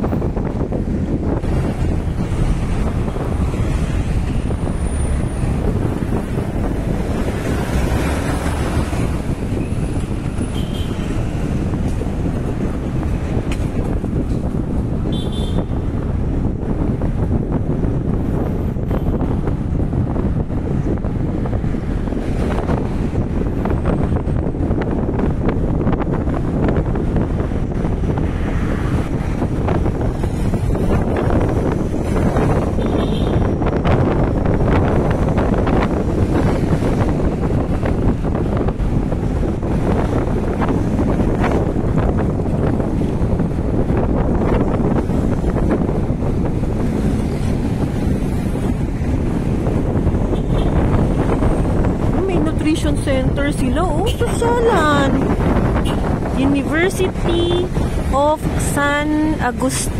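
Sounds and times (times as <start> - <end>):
passing city traffic: 0.0 - 59.9
road rumble: 0.0 - 59.9
wind buffeting microphone: 0.0 - 59.9.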